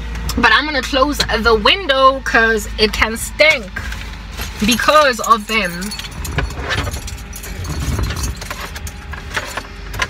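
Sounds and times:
refuse truck rumbling: 0:00.0 - 0:10.0.

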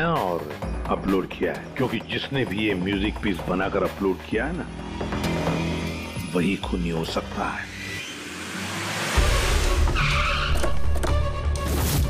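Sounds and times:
dramatic background music: 0:00.0 - 0:12.0
car tyres squealing: 0:07.5 - 0:11.2.

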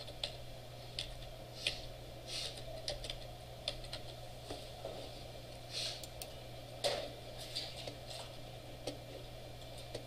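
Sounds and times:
computer keyboard keystrokes: 0:00.0 - 0:00.4, 0:02.8 - 0:04.2
steady low hum: 0:00.0 - 0:10.0.

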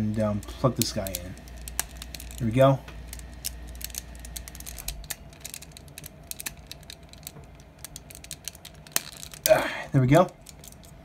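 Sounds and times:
small plastic clicks: 0:03.1 - 0:09.5.

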